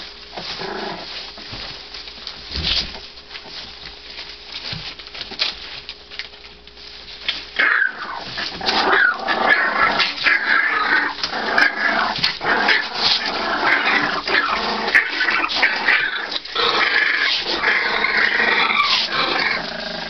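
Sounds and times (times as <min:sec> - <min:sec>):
rustle of shredded paper: 0:00.0 - 0:20.0
puppies whining: 0:07.1 - 0:20.0.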